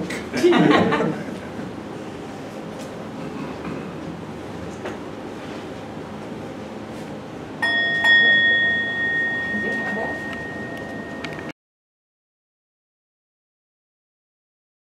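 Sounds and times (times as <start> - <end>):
singing bowl ringing: 7.6 - 11.5.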